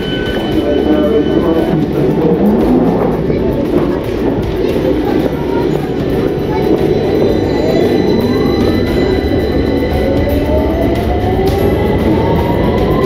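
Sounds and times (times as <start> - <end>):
train rumble: 0.0 - 13.0.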